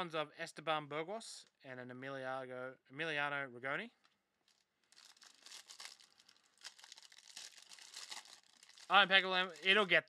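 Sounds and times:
plastic wrappers crinkling: 4.0s - 9.8s.

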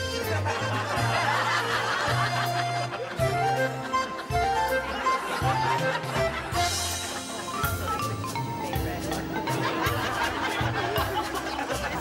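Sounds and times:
light comedy music: 0.0s - 12.0s
people laughing: 0.0s - 12.0s.

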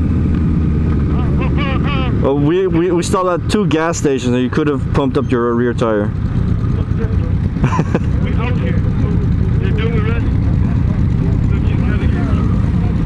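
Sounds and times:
motorcycle engines idling: 0.0s - 13.0s
person laughing: 7.6s - 8.3s.

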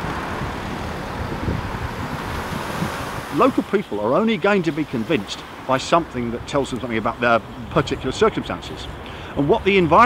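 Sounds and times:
wind on microphone: 0.0s - 3.7s
cars passing: 0.0s - 10.0s.

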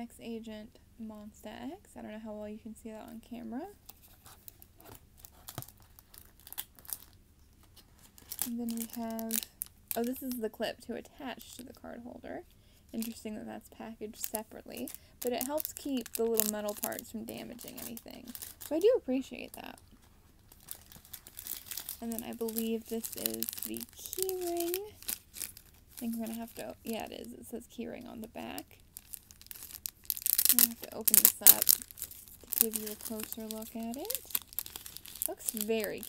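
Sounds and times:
plastic packaging crinkling: 3.8s - 10.7s, 13.0s - 36.0s
small plastic items clicking: 29.0s - 36.0s.

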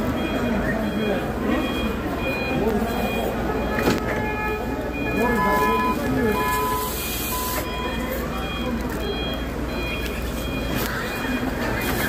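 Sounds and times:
forklift warning beeps: 0.0s - 12.0s.

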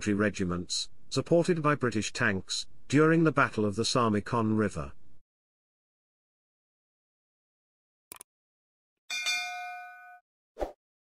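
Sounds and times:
metallic bell ding: 9.1s - 10.2s.

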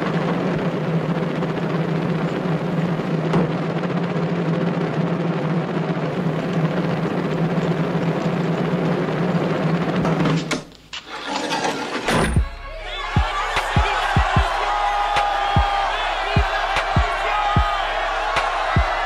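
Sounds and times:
low drum roll: 0.0s - 10.3s, 12.4s - 19.0s.

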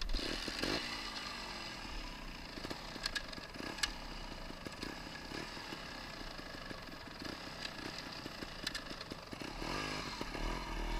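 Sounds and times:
motorcycle engine running: 0.0s - 10.9s
sharp clicks: 3.0s - 4.0s, 7.6s - 9.1s.

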